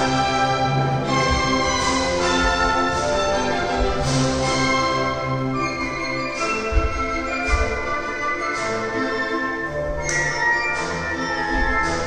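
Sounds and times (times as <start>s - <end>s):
classical ballet music: 0.0s - 12.0s.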